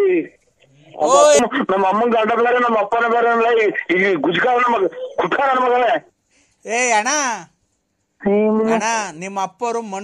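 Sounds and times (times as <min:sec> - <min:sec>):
person talking on phone line: 0:01.0 - 0:06.1.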